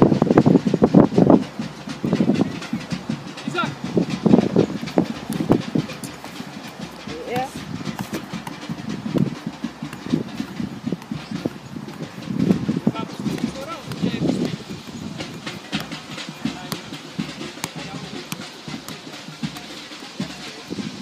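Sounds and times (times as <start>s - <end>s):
people shouting and calling out: 2.4s - 8.6s, 11.4s - 21.0s.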